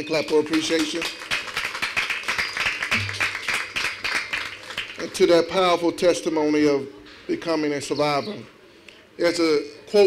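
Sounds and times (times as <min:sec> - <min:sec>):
crowd applauding: 0:00.3 - 0:05.0.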